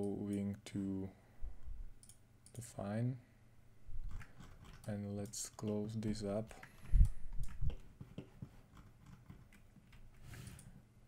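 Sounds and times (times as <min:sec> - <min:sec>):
computer mouse clicks: 0:02.0 - 0:02.6, 0:04.1 - 0:10.7.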